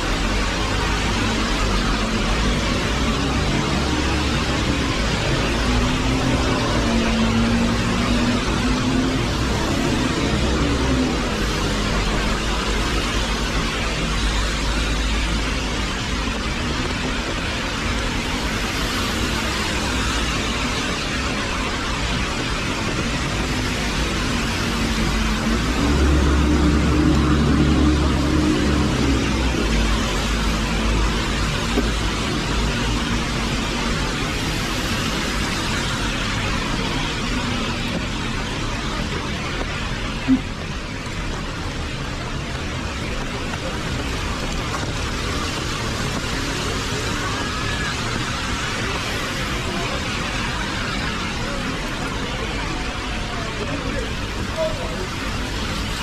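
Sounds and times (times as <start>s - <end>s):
rain hiss: 0.0s - 56.0s
tyres on wet road: 0.0s - 56.0s
vehicle engine hum: 0.0s - 56.0s.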